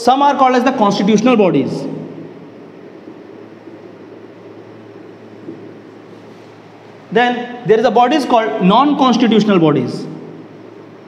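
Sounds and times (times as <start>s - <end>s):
low hum: 1.0s - 9.0s, 9.7s - 11.0s.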